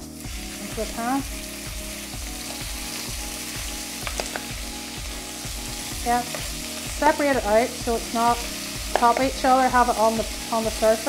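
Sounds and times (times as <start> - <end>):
beef sizzling in hot oil: 0.0 - 11.0.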